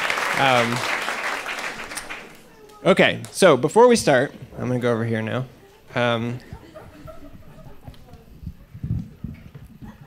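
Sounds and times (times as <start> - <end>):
microphone handling thumps: 6.5 - 10.0.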